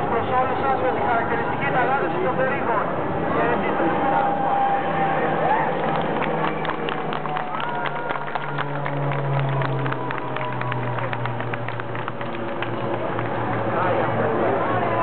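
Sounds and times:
crowd voices: 0:00.0 - 0:15.0
propeller plane engine droning: 0:00.0 - 0:15.0.

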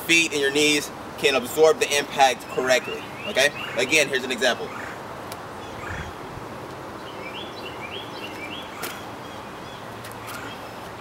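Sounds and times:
bird chirping: 0:02.3 - 0:05.0, 0:07.0 - 0:11.0.

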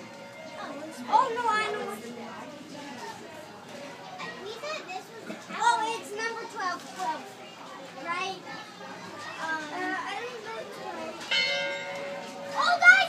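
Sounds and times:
children chattering and calling out: 0:00.0 - 0:13.0.

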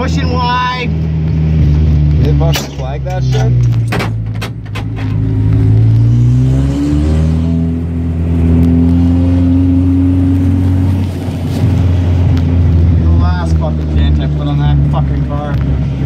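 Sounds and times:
race car engine revving: 0:00.0 - 0:16.0.

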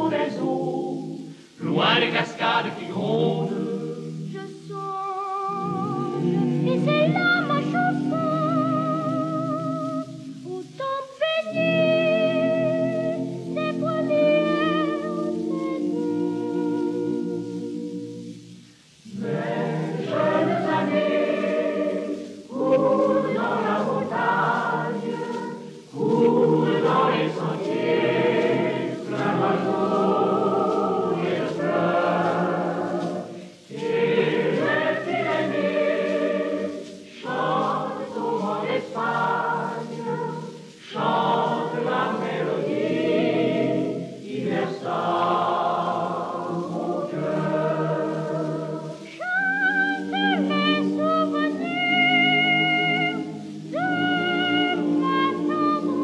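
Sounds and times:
male and boys' choir singing: 0:00.0 - 0:10.8, 0:11.4 - 0:18.3, 0:19.0 - 0:56.0.

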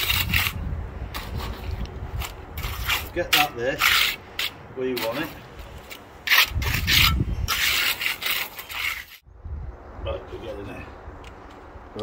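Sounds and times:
trowel scraping wet concrete: 0:00.0 - 0:09.2.

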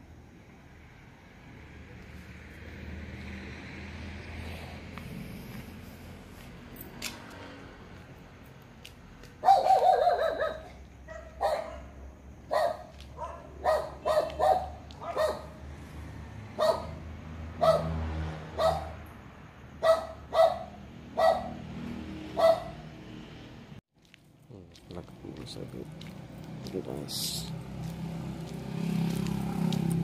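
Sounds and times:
dog barking: 0:09.4 - 0:15.6, 0:16.6 - 0:17.0, 0:17.6 - 0:19.0, 0:19.8 - 0:21.7, 0:22.4 - 0:22.8.

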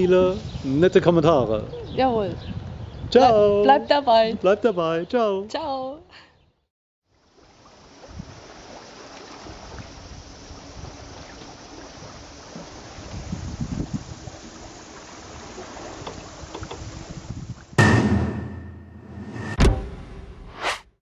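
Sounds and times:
wind on microphone: 0:00.0 - 0:04.4, 0:08.0 - 0:08.5, 0:11.9 - 0:17.8
sea water rushing and splashing: 0:07.2 - 0:17.8
sudden loud burst: 0:17.8 - 0:20.2.

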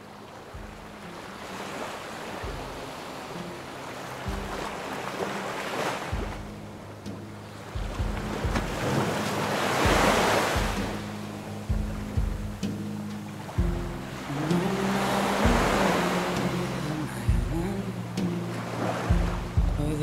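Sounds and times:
ocean surf washing: 0:00.0 - 0:20.0
deep drum thumps: 0:00.6 - 0:01.1, 0:02.4 - 0:03.0, 0:04.3 - 0:04.8, 0:06.1 - 0:14.2, 0:15.4 - 0:16.1, 0:17.3 - 0:18.4, 0:19.0 - 0:20.0
instrumental song intro: 0:06.2 - 0:20.0.

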